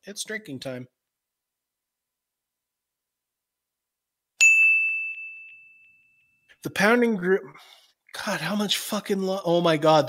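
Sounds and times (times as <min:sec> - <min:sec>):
bell-like ding: 0:04.4 - 0:06.6.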